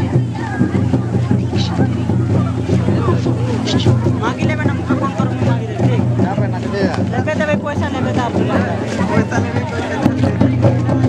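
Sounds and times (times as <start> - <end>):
crowd of overlapping voices: 0.0 - 11.0.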